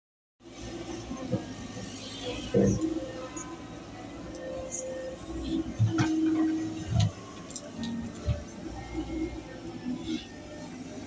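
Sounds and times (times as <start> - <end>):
excavator diesel engine running: 0.4 - 11.0.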